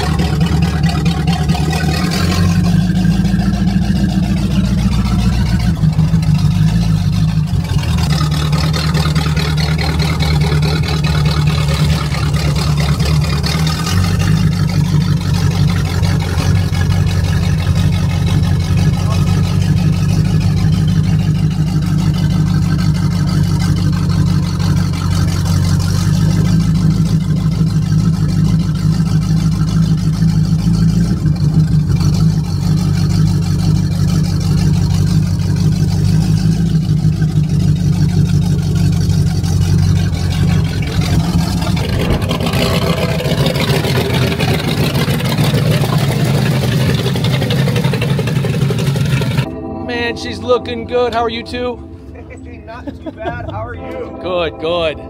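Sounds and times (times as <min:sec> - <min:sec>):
car engine low rumble: 0:00.0 - 0:55.0.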